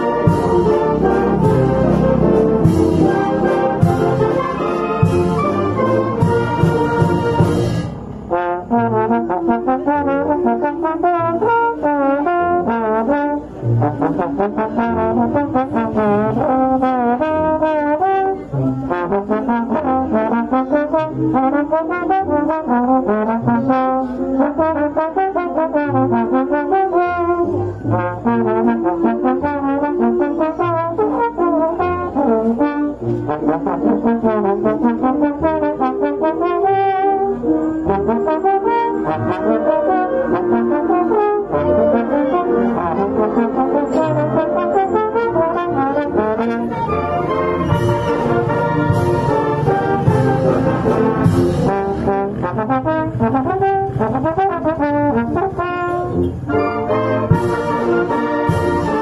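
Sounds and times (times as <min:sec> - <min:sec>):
brass band accompaniment: 0:00.0 - 0:59.0
solo slide trombone melody: 0:00.0 - 0:59.0.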